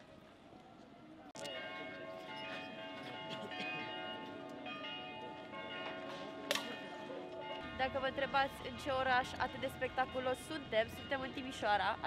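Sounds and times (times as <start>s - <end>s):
church bells ringing: 1.4s - 12.0s.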